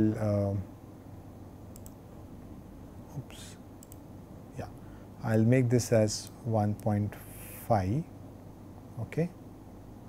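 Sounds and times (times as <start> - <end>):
faint clicks: 1.7 - 2.0, 3.8 - 4.0.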